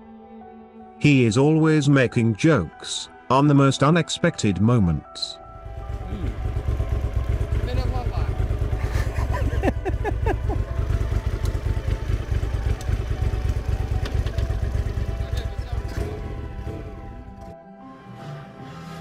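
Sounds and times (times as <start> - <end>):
motorcycle engine idling: 5.5 - 17.5
people talking and laughing: 8.7 - 10.8.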